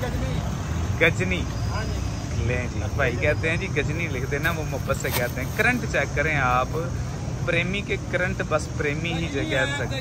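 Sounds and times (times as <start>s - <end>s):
low rumble of market street: 0.0s - 10.0s.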